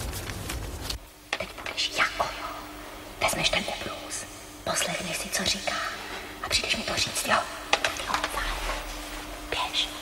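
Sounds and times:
woman and girl whispering: 9.5s - 10.0s.

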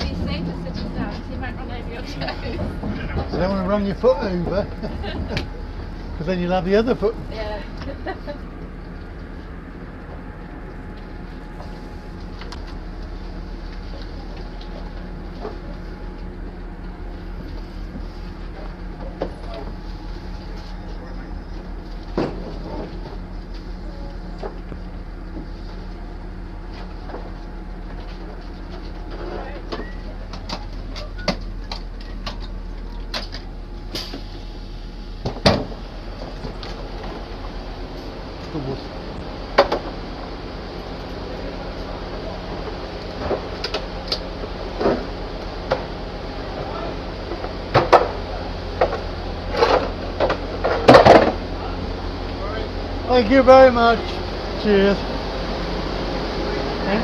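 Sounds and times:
train carriage hum: 0.0s - 57.0s.

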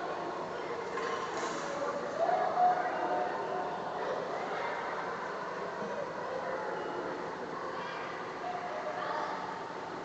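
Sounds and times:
echoing pool hall noise: 0.0s - 10.0s.

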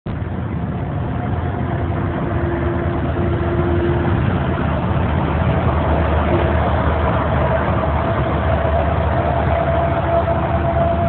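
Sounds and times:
engine and road noise drone: 0.0s - 11.0s
faint whine: 0.1s - 11.0s.

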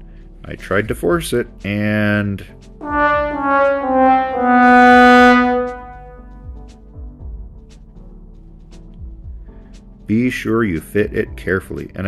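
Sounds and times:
sad trombone sound effect: 2.8s - 6.2s.

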